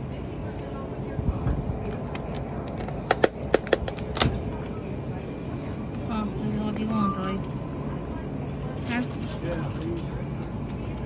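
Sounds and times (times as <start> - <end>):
grocery store background noise: 0.0 - 11.0.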